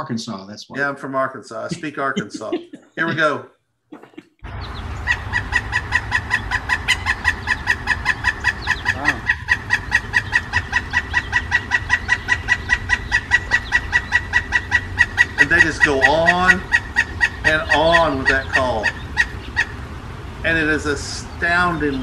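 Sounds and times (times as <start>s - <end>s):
low steady hum: 0.0s - 3.4s, 4.0s - 22.0s
woodpecker calling: 4.0s - 22.0s.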